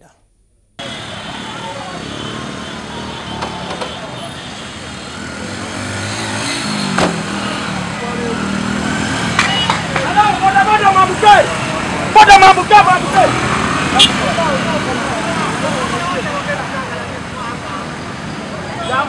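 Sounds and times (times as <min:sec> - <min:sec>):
crowd voices: 0:00.8 - 0:05.6, 0:07.1 - 0:19.0
motorcycle and vehicle engines: 0:00.8 - 0:19.0.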